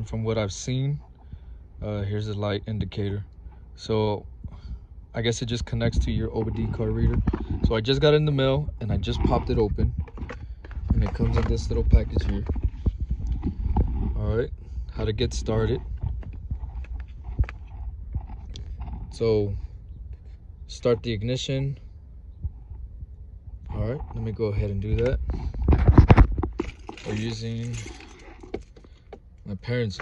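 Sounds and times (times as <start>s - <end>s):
knocks and rubbing from handling: 6.0s - 14.2s, 24.0s - 29.3s
packaging clicks and rustles: 25.3s - 29.2s.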